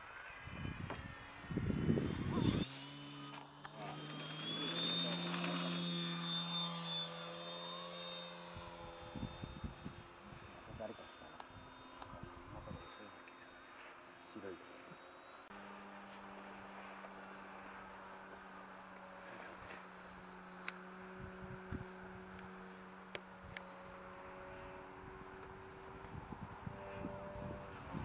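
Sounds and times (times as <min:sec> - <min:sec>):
model airplane motor drone: 0:00.0 - 0:28.0
wind on microphone: 0:00.4 - 0:02.7, 0:08.6 - 0:10.4, 0:25.8 - 0:28.0.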